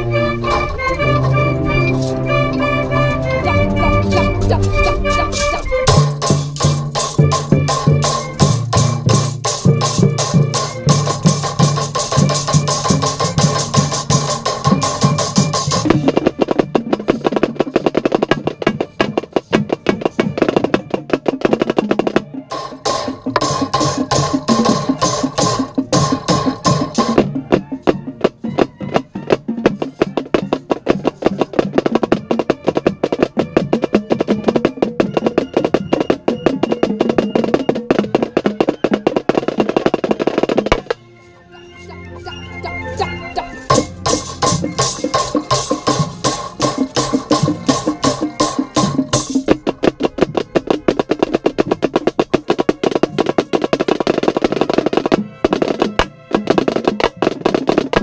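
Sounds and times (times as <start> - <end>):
wind section holding chords: 0.0 - 6.3, 41.0 - 49.2
snare drum rolls: 4.1 - 41.0, 43.6 - 58.0.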